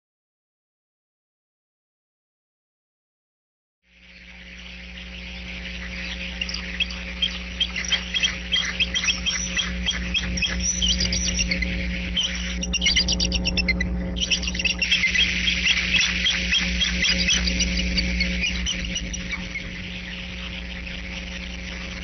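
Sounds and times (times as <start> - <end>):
steady low hum: 3.9 - 22.0
eagles chirping and twittering: 4.1 - 22.0.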